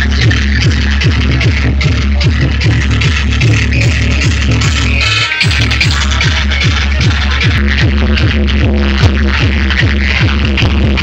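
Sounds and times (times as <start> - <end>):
electronic dance music: 0.0 - 11.0
heavy bass kick drum: 0.0 - 11.0.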